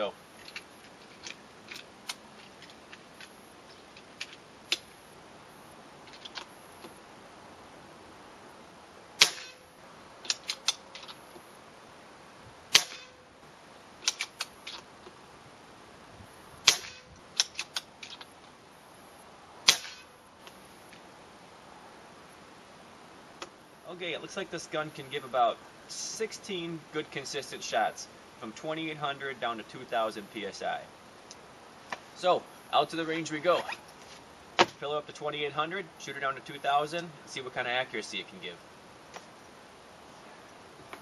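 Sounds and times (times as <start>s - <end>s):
small handling clicks: 0.4s - 4.9s
air rifle shot with ringing ping: 9.2s - 9.6s, 12.7s - 13.2s, 16.6s - 17.1s, 19.7s - 20.1s.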